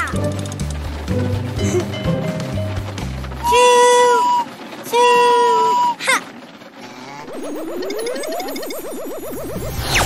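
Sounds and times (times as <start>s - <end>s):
toy train whistle toots: 3.4s - 6.2s.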